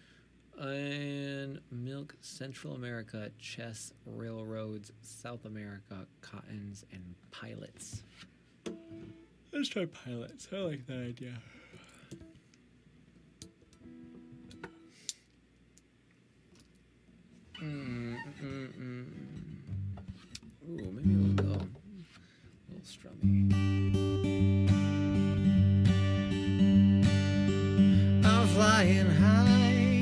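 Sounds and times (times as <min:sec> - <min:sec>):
acoustic guitar strumming chords: 0:19.2 - 0:21.8, 0:23.2 - 0:30.0.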